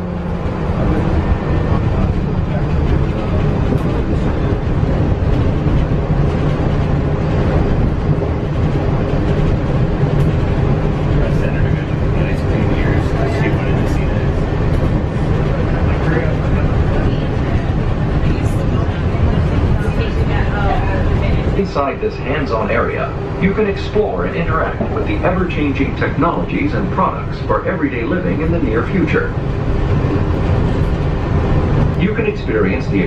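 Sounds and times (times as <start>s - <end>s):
faint voices: 0.0s - 33.0s
monorail rumble and hum: 0.0s - 33.0s.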